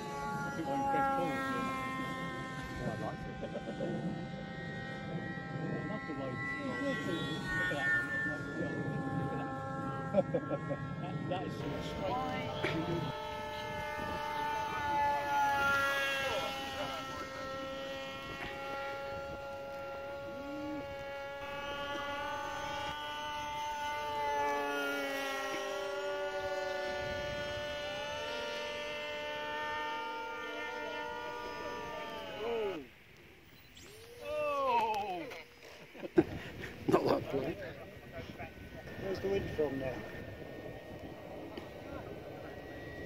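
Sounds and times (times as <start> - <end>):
model jet electric motor whine: 0.0 - 43.0.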